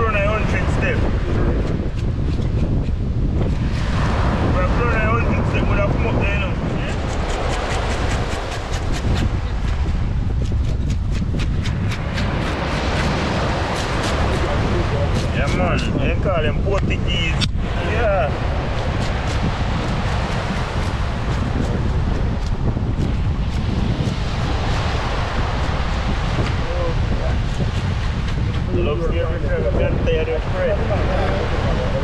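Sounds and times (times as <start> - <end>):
surf: 0.0 - 32.0
wind buffeting microphone: 0.0 - 32.0.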